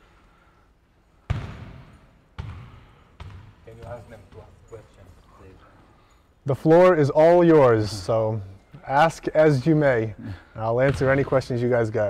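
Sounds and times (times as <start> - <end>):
basketball bouncing on hard court: 1.3 - 5.1, 10.8 - 11.4.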